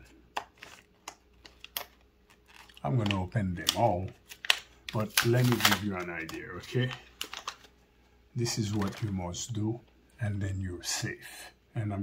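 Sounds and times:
plastic package being pried open: 0.3 - 7.7
man's voice: 8.4 - 12.0.

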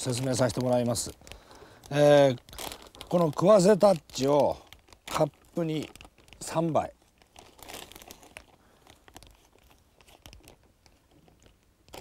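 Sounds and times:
bait bag crinkling and rustling: 0.0 - 12.0.

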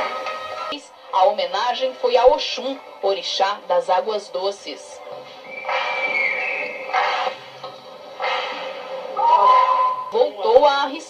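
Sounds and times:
crowd sound: 5.4 - 10.2.

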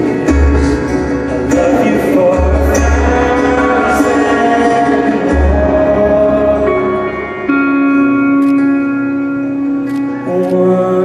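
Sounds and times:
live band guitars chords: 0.0 - 11.0.

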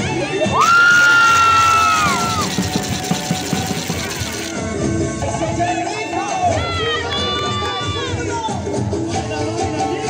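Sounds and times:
crowd noise: 0.0 - 10.0
dance music playing: 0.7 - 4.6.

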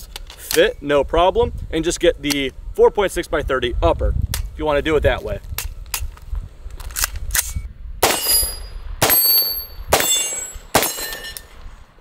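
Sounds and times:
gunshots ringing out: 8.0 - 11.3.

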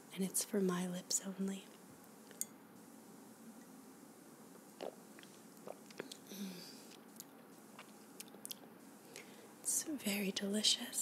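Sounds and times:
person sipping and swallowing: 4.5 - 8.5
faint wet mouth smacks: 4.8 - 6.2.

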